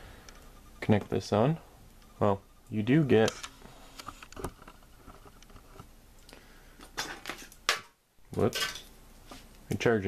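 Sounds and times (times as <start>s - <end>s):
faint clicks and rustles of cables: 1.9s - 8.6s.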